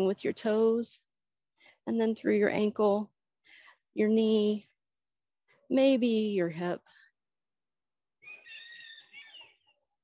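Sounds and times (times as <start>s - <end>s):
bird singing: 8.2s - 10.0s.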